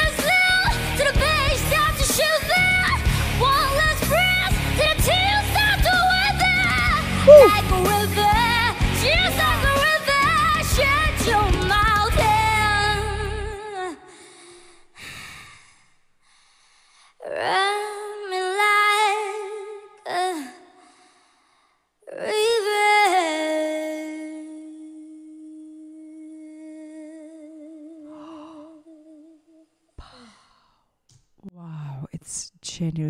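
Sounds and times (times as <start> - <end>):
faint breaths: 7.3 - 7.6
woman singing solo with vibrato: 7.3 - 7.7.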